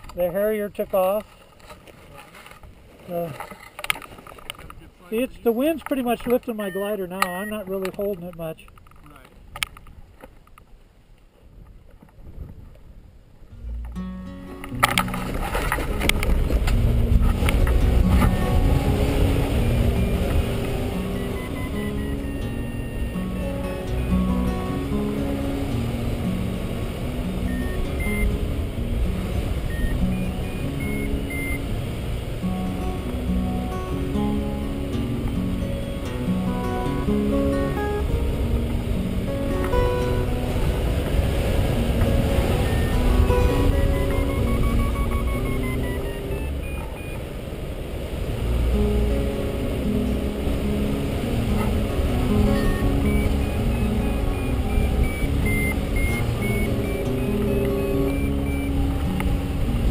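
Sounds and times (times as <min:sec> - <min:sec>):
wind rushing on microphone: 0:08.7 - 0:59.9
fingerpicked acoustic guitar: 0:13.5 - 0:59.9.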